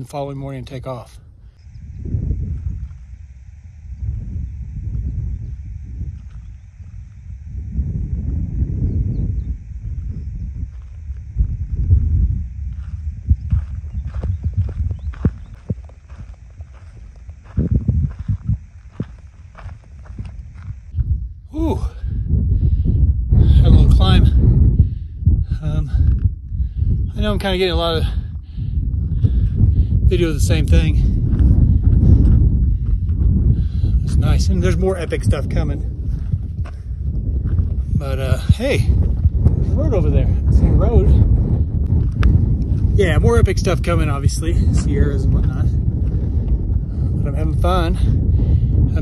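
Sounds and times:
wind buffeting microphone: 0.0 - 49.0
faint high buzz: 0.1 - 22.0
footsteps crunching on dirt: 5.6 - 7.6, 9.8 - 21.0, 29.0 - 48.0.

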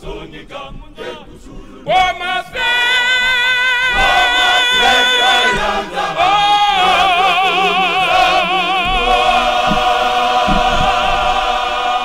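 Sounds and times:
male choir singing: 0.0 - 12.0.

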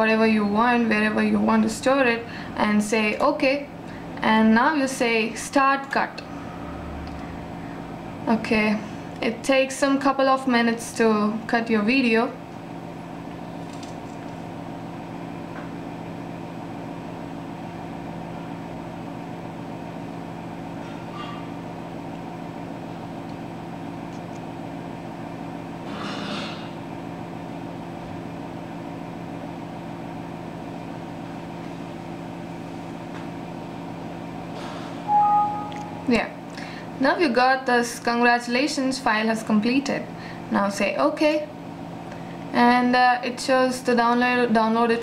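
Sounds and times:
steady machine hum: 0.0 - 45.0.

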